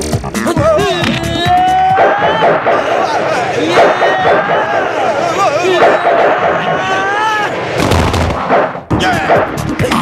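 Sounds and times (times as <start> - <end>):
wavering yell: 0.4 - 7.6
heavy booming impacts: 5.8 - 9.9.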